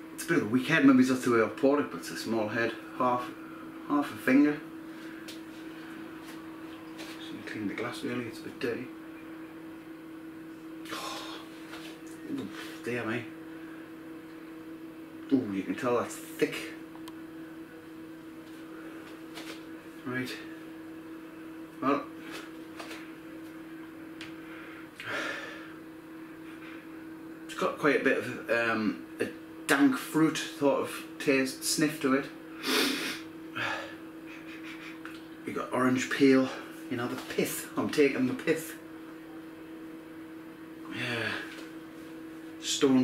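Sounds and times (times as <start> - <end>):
appliance or fan humming: 0.0 - 43.0
man sniffing through nose: 32.6 - 33.3.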